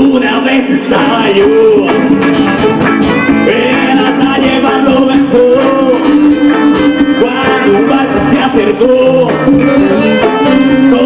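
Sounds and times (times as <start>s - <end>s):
electric guitar: 0.0s - 11.0s
latin dance band playing: 0.0s - 11.0s.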